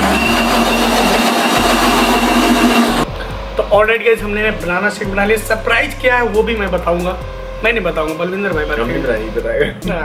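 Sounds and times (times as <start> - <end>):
mixer grinder motor whine: 0.0 - 3.1.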